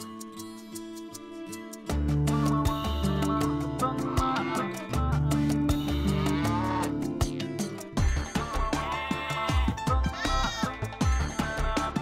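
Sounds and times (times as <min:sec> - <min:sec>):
upbeat music with bass drum: 0:00.0 - 0:12.0
goat bleat: 0:05.8 - 0:07.0, 0:09.0 - 0:10.9.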